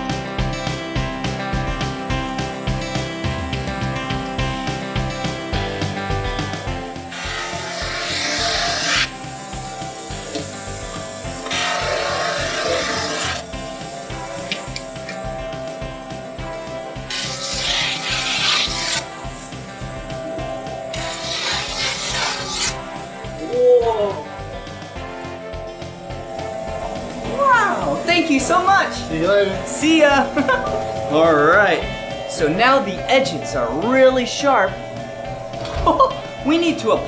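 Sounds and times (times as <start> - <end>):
background music with steady beat: 0.0 - 37.0
grinding machine on snowboard edge: 6.9 - 23.4.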